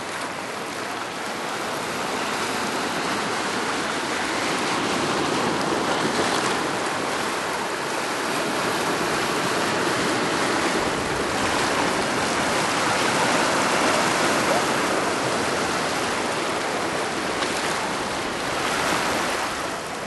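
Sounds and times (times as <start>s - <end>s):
ocean water churning over rocks: 0.0s - 20.0s.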